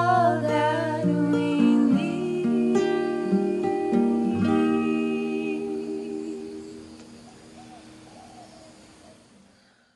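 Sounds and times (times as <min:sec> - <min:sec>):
acoustic guitar chord ringing: 0:00.0 - 0:08.1
women humming: 0:00.0 - 0:09.2.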